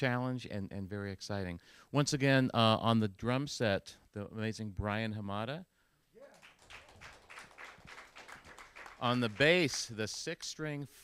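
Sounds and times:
faint applause: 0:06.2 - 0:09.9.

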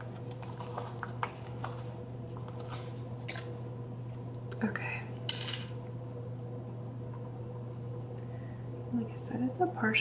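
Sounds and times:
paper crinkling: 0:00.0 - 0:03.5
steady low hum: 0:00.0 - 0:10.0.

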